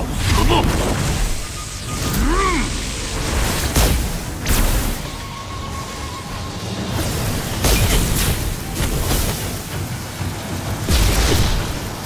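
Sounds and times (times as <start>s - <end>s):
film score: 0.0s - 12.0s.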